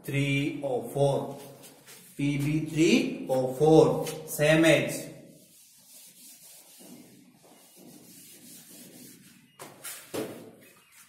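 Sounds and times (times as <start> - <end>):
eraser wiping whiteboard: 5.3 - 10.1.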